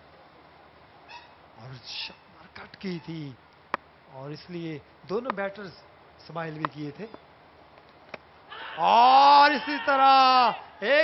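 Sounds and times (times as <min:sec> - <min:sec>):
person shouting: 0:08.5 - 0:11.0.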